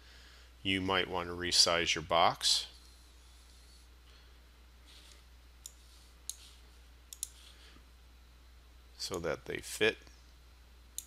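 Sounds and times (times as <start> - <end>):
low steady hum: 0.0 - 11.0
computer mouse clicks: 5.1 - 7.4.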